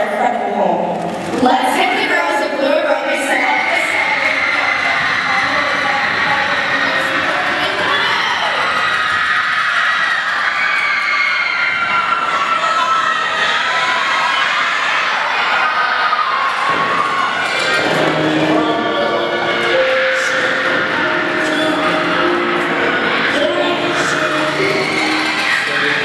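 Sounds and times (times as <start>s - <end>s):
music playing: 0.0s - 9.3s, 17.4s - 26.0s
crowd cheering: 0.8s - 26.0s.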